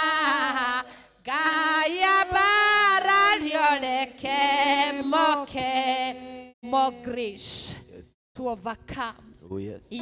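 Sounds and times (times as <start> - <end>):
woman singing into a microphone: 0.0 - 7.7.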